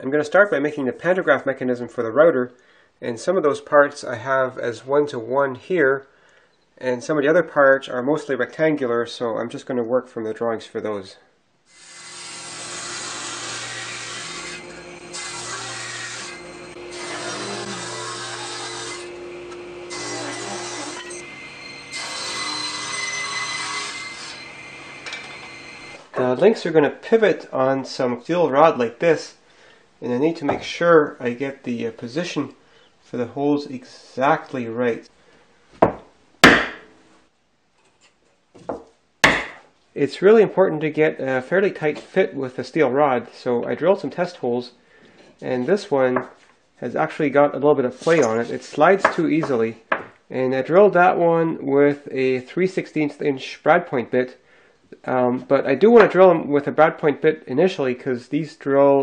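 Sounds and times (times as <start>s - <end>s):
table saw cutting wood: 11.7s - 26.1s, 48.0s - 49.5s.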